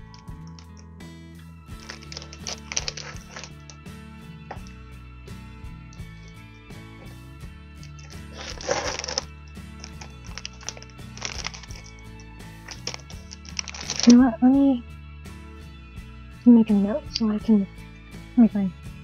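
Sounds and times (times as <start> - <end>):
background music: 0.0 - 19.0
plastic wrapper rustling: 1.8 - 3.8, 7.9 - 12.0, 12.6 - 14.2.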